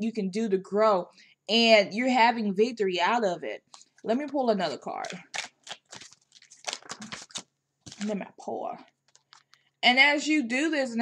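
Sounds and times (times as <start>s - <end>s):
cards snapping and rustling: 3.7s - 8.2s, 9.0s - 9.6s.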